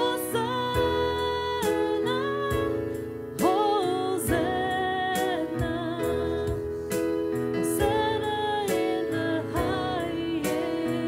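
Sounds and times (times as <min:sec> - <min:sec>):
woman singing with vibrato: 0:00.0 - 0:07.0, 0:07.6 - 0:11.0
sustained keyboard chords: 0:00.0 - 0:11.0.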